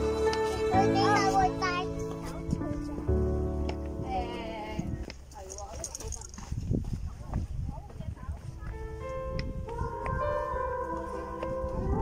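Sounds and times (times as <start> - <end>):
music with held tones: 0.0 - 4.3, 8.7 - 12.0
faint voices of hikers: 1.0 - 12.0
footsteps on stone steps: 1.9 - 12.0.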